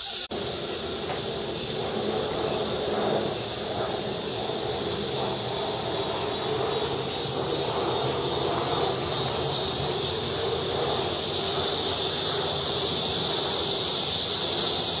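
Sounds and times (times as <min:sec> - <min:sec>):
cicadas buzzing: 0:00.0 - 0:15.0
low rumble of wind: 0:00.3 - 0:15.0.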